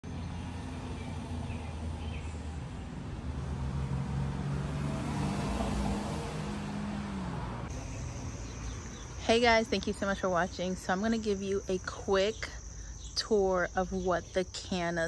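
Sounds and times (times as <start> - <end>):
car passing by: 0.1 - 8.9.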